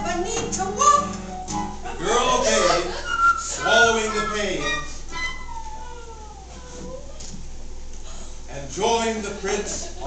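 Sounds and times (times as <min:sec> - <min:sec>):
person vocalising with sliding pitch: 0:05.3 - 0:07.1.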